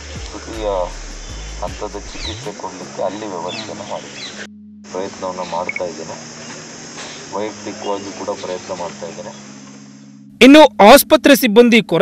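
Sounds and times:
high-pitched buzz: 0.0s - 10.6s
man speaking: 0.3s - 1.0s, 1.6s - 4.2s, 4.9s - 6.2s, 7.3s - 9.4s, 10.4s - 12.0s.

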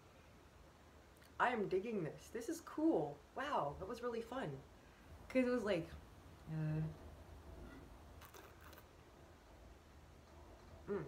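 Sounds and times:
faint soft noises: 0.0s - 11.0s
low steady hum: 0.0s - 11.0s.

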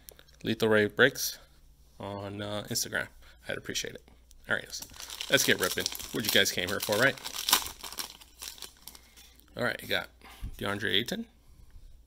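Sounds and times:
foil wrapper crinkling: 4.7s - 9.3s
foil wrapper tearing: 4.8s - 9.1s.

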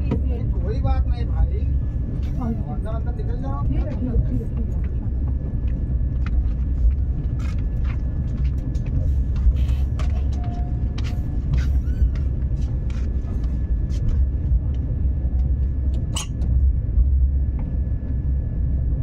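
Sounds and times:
train coach rumble: 0.0s - 19.0s.

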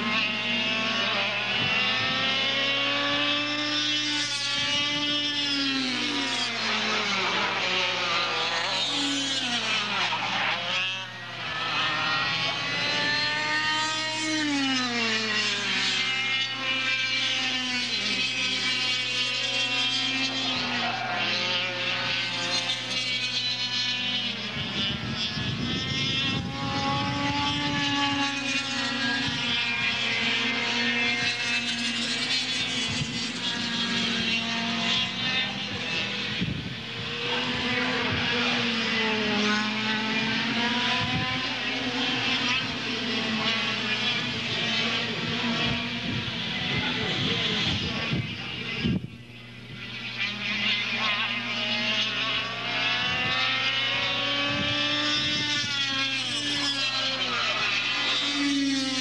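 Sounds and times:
kart engines racing: 0.0s - 59.0s.

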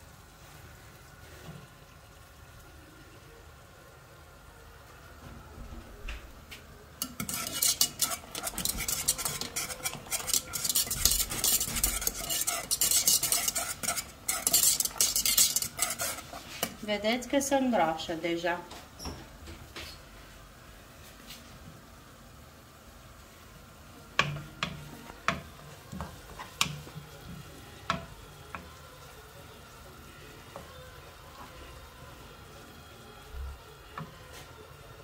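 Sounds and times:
faint steady hiss: 0.0s - 7.3s
wire whisk scraping a pan: 7.0s - 16.8s.

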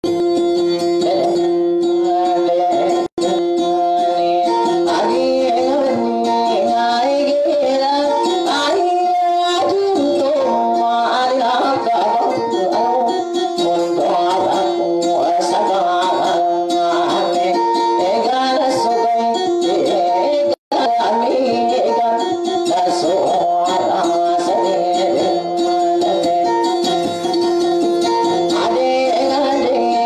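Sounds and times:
plucked string instrument melody: 0.0s - 30.0s.

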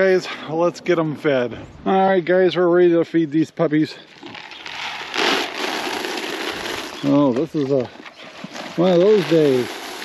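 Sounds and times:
feed pellets pouring into a pan: 4.8s - 7.2s, 9.0s - 10.0s.

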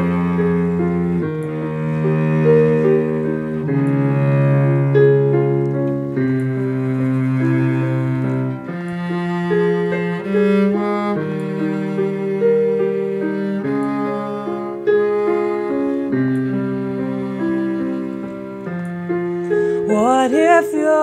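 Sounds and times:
cello bowing low notes: 0.0s - 20.6s
piano chords: 0.0s - 21.0s.

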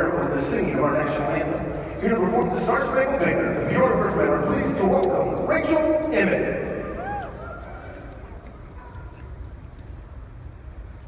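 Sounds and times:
faint crowd noise: 0.0s - 11.0s.

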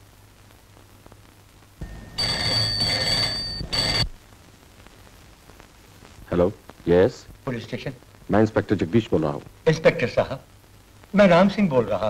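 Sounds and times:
desk telephone bell ringing: 1.8s - 4.1s.

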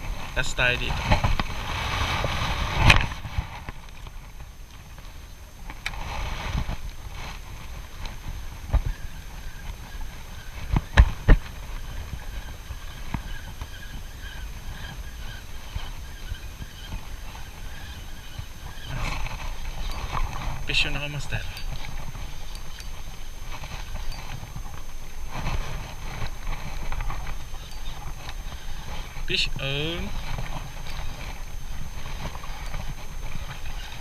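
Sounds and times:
wind rumble on microphone: 0.0s - 34.0s
fishing rod and reel clicks: 12.0s - 34.0s.

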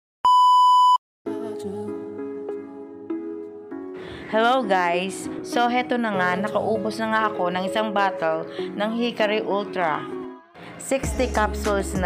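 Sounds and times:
test tone beep: 0.3s - 1.0s
background music with sustained chords: 1.3s - 12.0s.

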